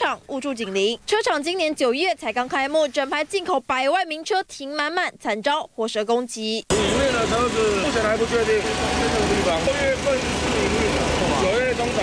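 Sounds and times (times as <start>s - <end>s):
vehicle engine rumbling: 6.7s - 12.0s.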